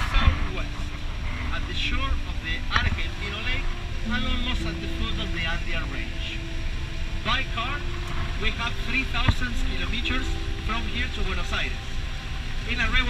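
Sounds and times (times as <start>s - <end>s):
bus engine and tyre rumble: 0.0s - 13.0s.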